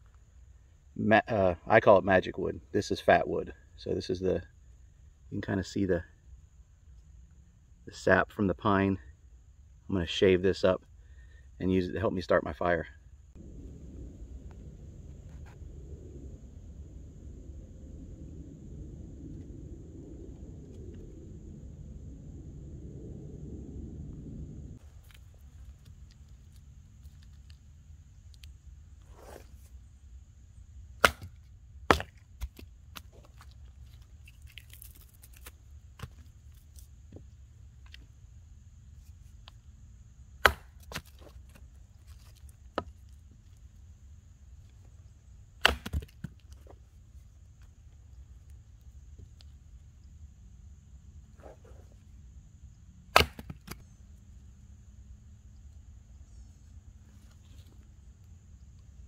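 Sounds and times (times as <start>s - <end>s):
low rumble: 13.2s - 26.2s
hatchet splitting log: 31.0s - 33.5s, 40.4s - 41.6s, 45.6s - 46.4s, 53.1s - 53.8s.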